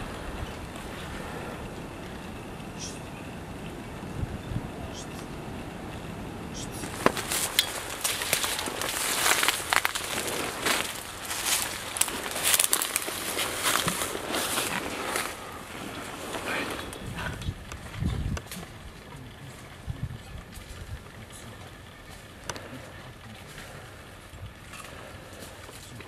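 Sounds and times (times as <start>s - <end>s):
footsteps crunching through leaves: 6.8s - 17.1s
brush and clothing rustling: 6.8s - 17.3s.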